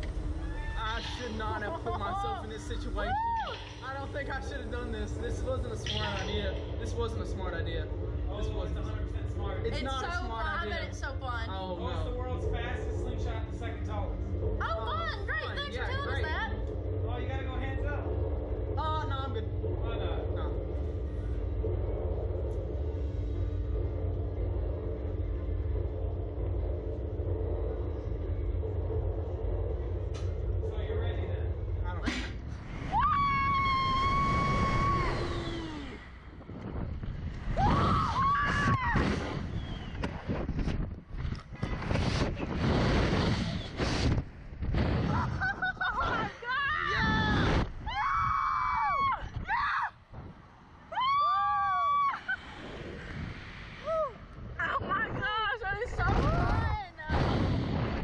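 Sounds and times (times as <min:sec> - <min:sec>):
ride machinery rumble: 0:00.0 - 0:49.0
people screaming and whooping: 0:00.2 - 0:01.4, 0:02.8 - 0:03.8, 0:32.8 - 0:36.0, 0:37.5 - 0:39.4, 0:45.1 - 0:50.0, 0:50.8 - 0:53.2, 0:53.8 - 0:54.5
wind on microphone: 0:32.4 - 0:51.2, 0:51.8 - 0:58.0
sudden release burst: 0:57.1 - 0:58.0.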